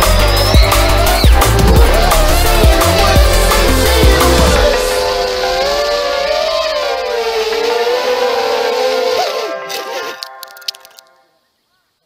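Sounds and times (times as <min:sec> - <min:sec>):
drone motors whining: 0:00.0 - 0:10.2.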